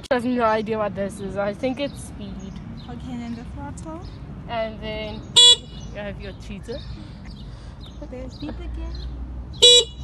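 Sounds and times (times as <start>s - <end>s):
scooter horn beep: 5.4s - 5.8s, 9.6s - 10.0s.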